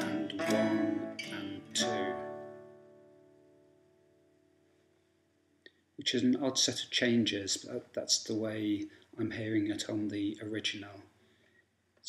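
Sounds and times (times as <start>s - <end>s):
acoustic guitar chord strummed: 0.0s - 4.2s.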